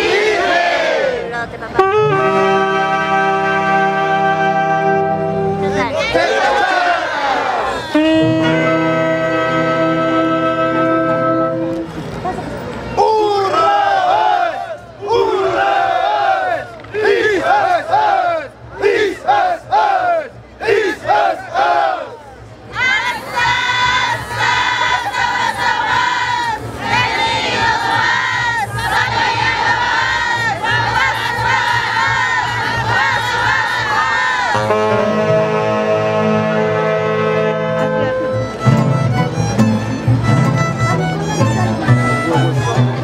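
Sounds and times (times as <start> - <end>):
group shouting high-pitched calls: 6.0 - 8.0, 13.0 - 22.2
instrumental music: 7.7 - 12.0, 22.8 - 43.0.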